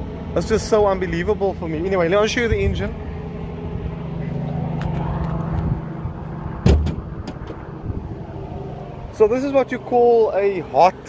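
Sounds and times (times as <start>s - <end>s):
sharp clunk: 6.6s - 7.6s.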